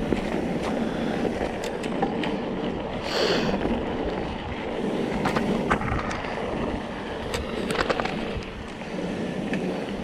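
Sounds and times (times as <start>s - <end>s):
bike tyres crunching on gravel: 0.0s - 10.0s.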